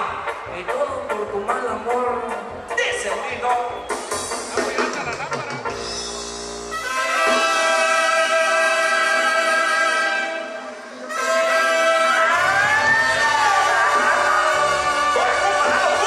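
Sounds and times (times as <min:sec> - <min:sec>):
bass: 0:00.0 - 0:10.2, 0:11.1 - 0:16.0
brass chords: 0:00.0 - 0:16.0.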